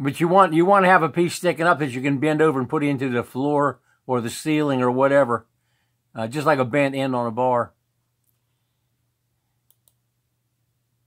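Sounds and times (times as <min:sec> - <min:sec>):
computer mouse clicks: 0:09.6 - 0:10.0.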